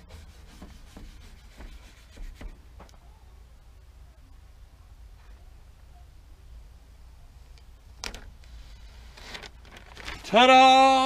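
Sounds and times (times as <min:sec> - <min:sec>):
faint low rumble: 0:02.6 - 0:10.4
tape being peeled off: 0:08.0 - 0:10.3.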